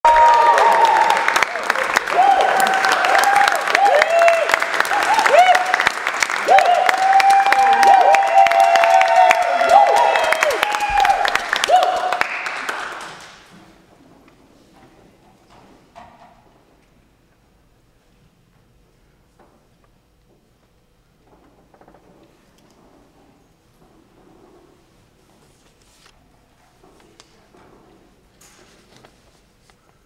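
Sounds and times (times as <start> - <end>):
voices cheering: 0.0 - 12.8
audience applauding: 0.0 - 13.5.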